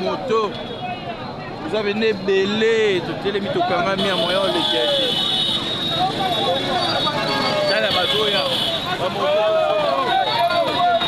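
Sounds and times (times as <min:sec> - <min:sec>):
motorcycle traffic: 0:00.0 - 0:11.0
people shouting: 0:05.9 - 0:11.0.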